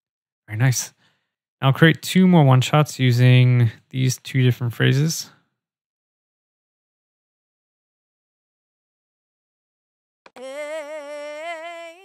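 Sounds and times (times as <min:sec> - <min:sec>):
synthesized voice singing: 0:10.3 - 0:12.0.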